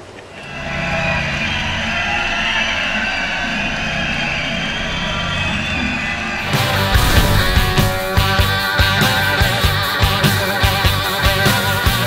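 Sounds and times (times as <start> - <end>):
drums crashing: 6.4 - 9.1.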